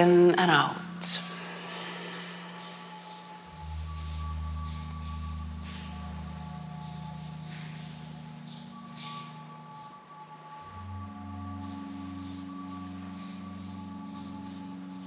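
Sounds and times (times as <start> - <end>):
low ambient drone: 0.0 - 15.0
quiet held higher tones: 0.0 - 15.0.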